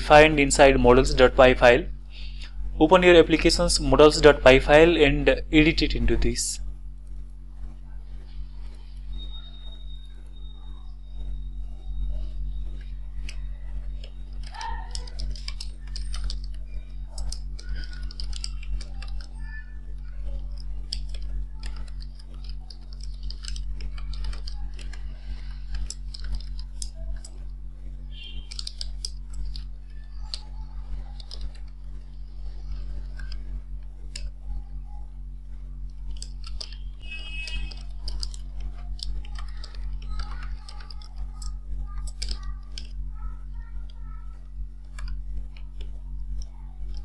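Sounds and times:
low electrical hum: 0.0s - 47.0s
typing on a computer keyboard: 14.0s - 19.6s, 20.2s - 27.4s, 28.3s - 31.8s, 36.0s - 43.0s.

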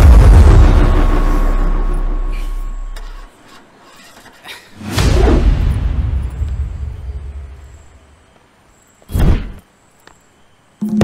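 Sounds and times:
loud deep boom: 0.0s - 3.0s, 4.9s - 7.6s
whoosh: 0.0s - 3.0s, 4.8s - 7.5s
deep rumble: 0.0s - 3.3s.

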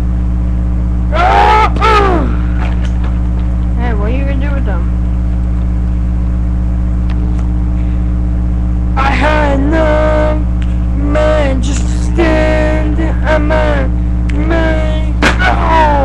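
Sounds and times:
steady low hum: 0.0s - 16.0s
boy making vocal play sounds: 11.0s - 16.0s.

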